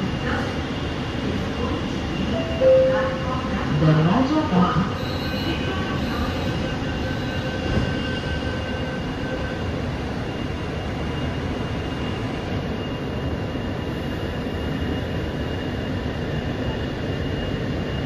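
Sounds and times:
train wheels rumbling on rail: 3.1s - 18.0s.

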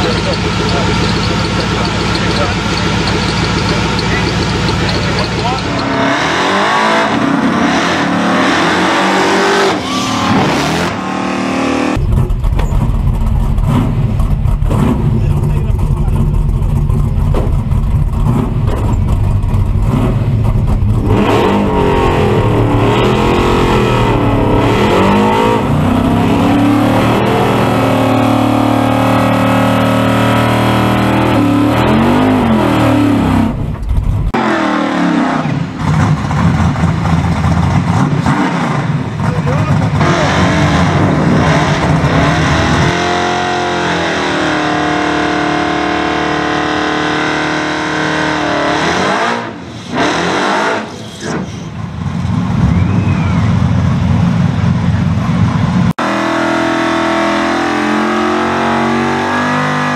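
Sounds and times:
racing car engine revving: 0.0s - 59.9s.

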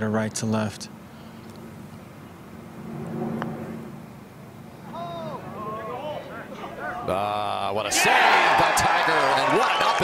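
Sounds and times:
outdoor background ambience: 0.0s - 10.0s.

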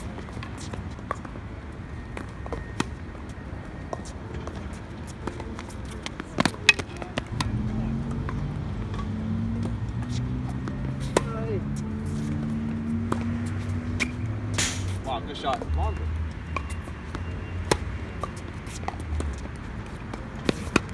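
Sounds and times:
tennis ball bouncing: 0.0s - 1.4s, 3.9s - 14.6s, 15.5s - 20.9s
tennis racket hitting ball: 5.2s - 7.5s, 8.2s - 14.9s, 17.6s - 20.9s.

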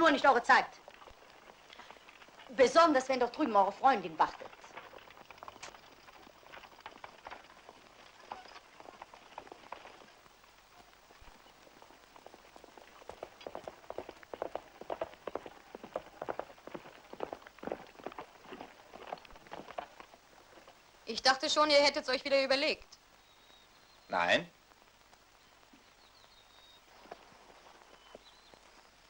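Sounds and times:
horse hooves clattering: 0.0s - 23.9s, 24.7s - 29.0s.

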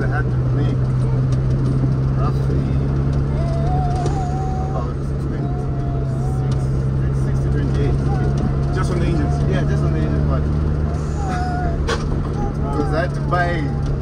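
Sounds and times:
car engine hum from inside cabin: 0.0s - 14.0s
road noise: 0.0s - 14.0s.

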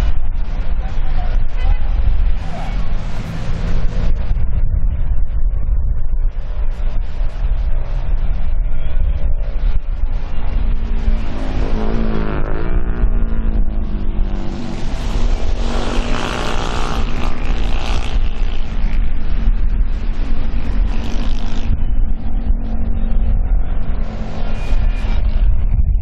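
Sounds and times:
wind rumble on microphone: 0.0s - 26.0s
small boat engines racing: 11.0s - 19.0s.

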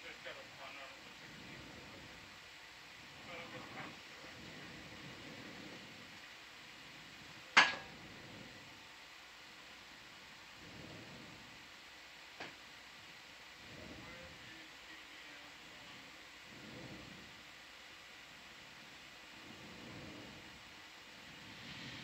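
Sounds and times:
low hiss: 0.0s - 22.0s
faint murmured voices: 13.6s - 17.2s.

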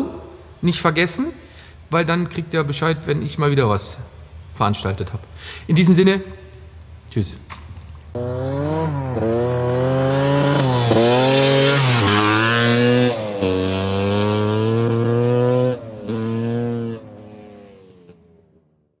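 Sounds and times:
motor scooter engine revving: 8.2s - 18.4s.

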